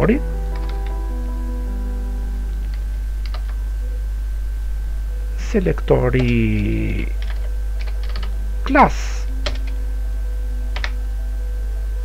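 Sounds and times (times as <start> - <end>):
steady low hum: 0.0 - 12.0
keyboard keystrokes: 9.4 - 9.8, 10.8 - 11.0.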